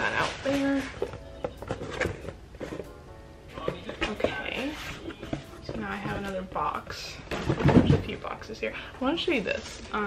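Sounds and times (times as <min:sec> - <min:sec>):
tissue paper rustling: 0:03.6 - 0:06.5.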